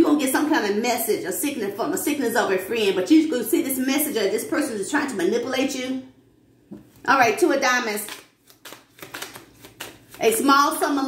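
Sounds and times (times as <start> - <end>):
cards being shuffled: 7.9 - 10.5.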